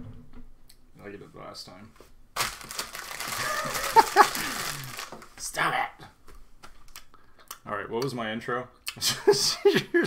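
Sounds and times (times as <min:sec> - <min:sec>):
men laughing: 0:03.2 - 0:05.0, 0:09.0 - 0:10.0.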